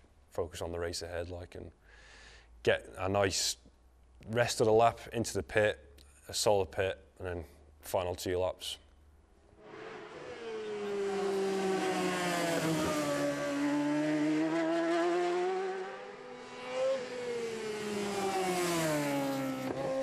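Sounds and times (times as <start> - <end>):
racing motorcycle engine: 9.6 - 20.0.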